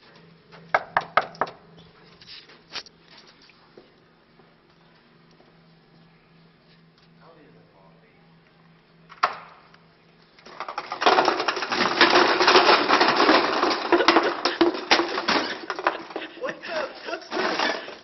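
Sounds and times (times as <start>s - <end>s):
paper cups clattering down: 10.4s - 18.0s.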